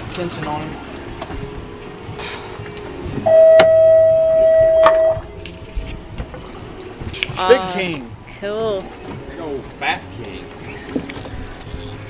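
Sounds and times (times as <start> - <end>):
loud steady beep: 3.2 - 5.4.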